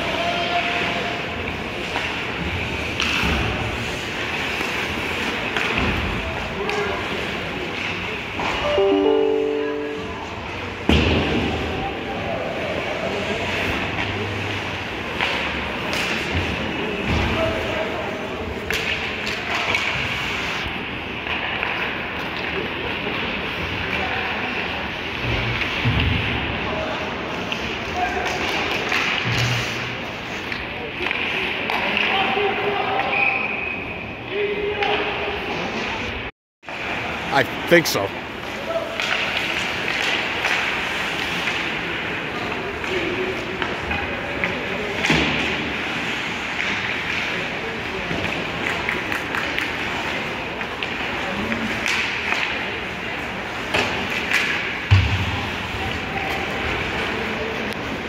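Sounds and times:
spectators' voices: 0.0 - 20.6
sticks and puck clacking: 13.9 - 16.7, 18.5 - 20.4, 21.2 - 23.2, 27.4 - 33.1, 38.4 - 55.1.

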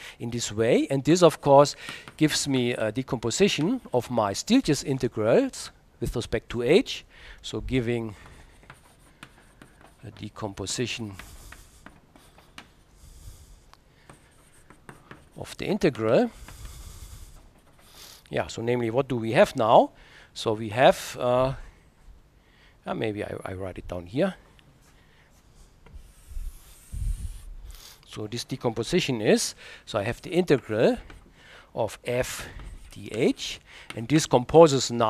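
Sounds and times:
chalk tapping on blackboard: 1.8 - 2.6, 8.1 - 18.2, 32.2 - 34.3
chalk scratching on blackboard: 7.8 - 18.2, 25.3 - 28.0.

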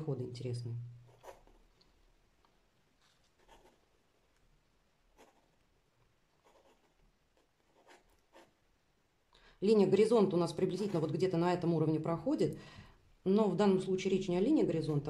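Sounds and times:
pencil scratching on paper: 1.0 - 1.7, 3.2 - 3.9, 5.1 - 5.6, 6.4 - 8.6, 10.6 - 11.2.

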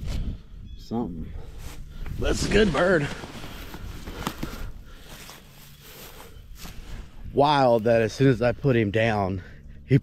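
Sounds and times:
feathers rustling on dry grass: 1.5 - 8.1.

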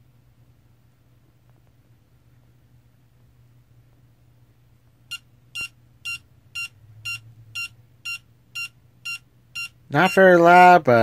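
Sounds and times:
alarm clock beeping: 5.1 - 10.8.

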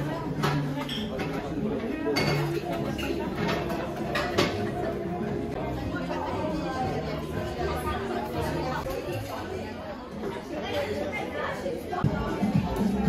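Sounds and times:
chatter of many diners: 0.0 - 13.0.

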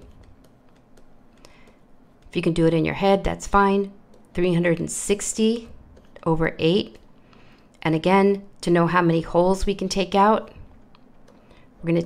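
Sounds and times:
stylus tapping on tablet: 0.0 - 2.7, 4.0 - 4.6.

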